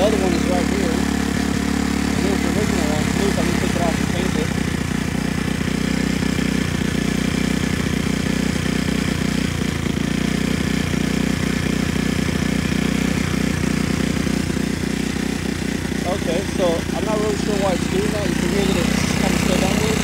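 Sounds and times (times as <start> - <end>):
go-kart engine idling: 0.0 - 20.0.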